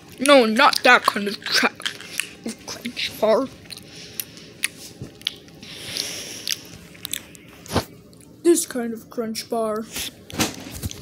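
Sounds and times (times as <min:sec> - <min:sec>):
crinkly rustle: 0:09.9 - 0:11.0.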